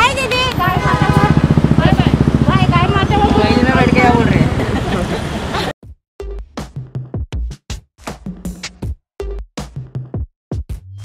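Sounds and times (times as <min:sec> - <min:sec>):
people talking: 0:00.0 - 0:05.7
vehicle engine throbbing: 0:00.0 - 0:05.7.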